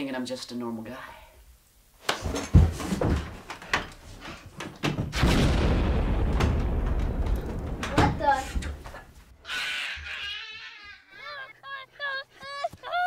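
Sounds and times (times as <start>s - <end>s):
explosion with low rumble: 5.2s - 8.4s.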